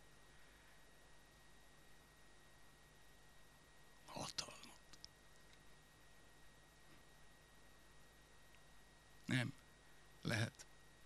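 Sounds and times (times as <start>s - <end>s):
faint clicks: 4.8s - 5.7s.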